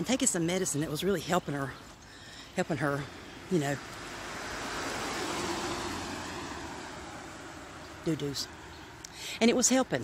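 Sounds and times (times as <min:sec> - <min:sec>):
car passing by: 0:03.3 - 0:09.1.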